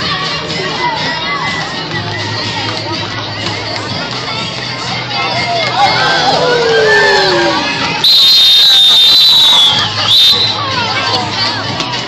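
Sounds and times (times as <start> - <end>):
crowd shouting and cheering: 0.0 - 12.0
high-pitched whistle blast: 8.0 - 10.6.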